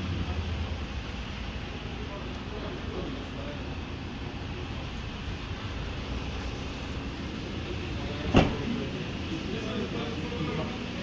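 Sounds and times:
car tailgate shutting: 8.3 - 8.7.

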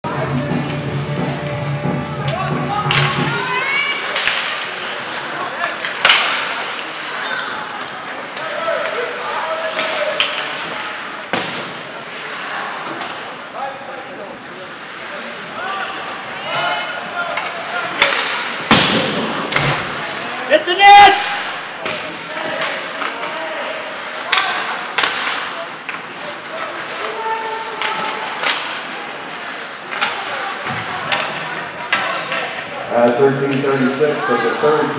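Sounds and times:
people talking: 0.0 - 18.4, 19.8 - 34.9
skates on ice: 0.2 - 34.9
hockey sticks clacking: 2.1 - 34.6
puck banging against boards: 5.6 - 6.9, 17.3 - 20.0, 24.2 - 27.1
players shouting: 20.1 - 25.0.

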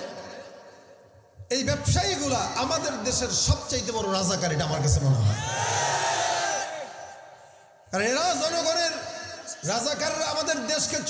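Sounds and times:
man speaking over public address: 0.0 - 0.7, 1.4 - 5.4, 7.9 - 11.0.

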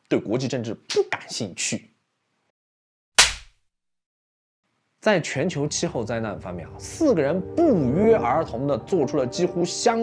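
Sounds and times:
sharp hit sound effect: 3.2 - 3.5.

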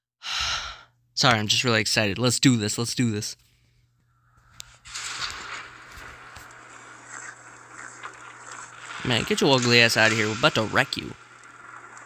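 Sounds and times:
constant low hum: 0.9 - 12.0
noisy rush: 4.6 - 12.0.

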